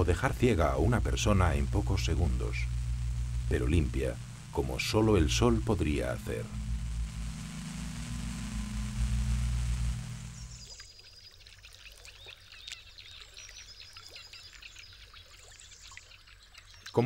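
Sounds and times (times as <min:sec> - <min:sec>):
low machine hum: 0:00.0 - 0:10.8
faint bird chirps: 0:09.9 - 0:17.0.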